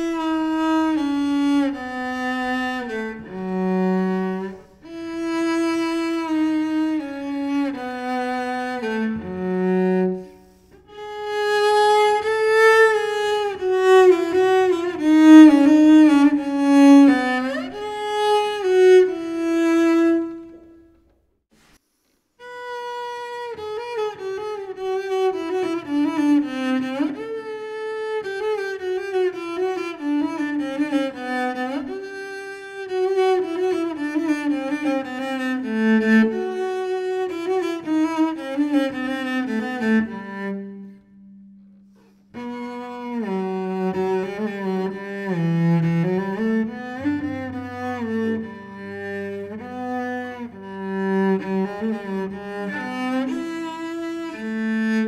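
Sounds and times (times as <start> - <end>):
bowed solo cello melody: 0.0 - 21.2, 22.4 - 55.0.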